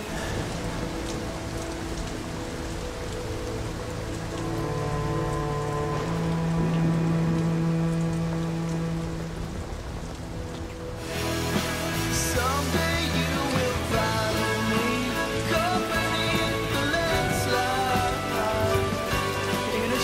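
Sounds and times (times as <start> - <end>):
heavy rain: 0.0 - 20.0.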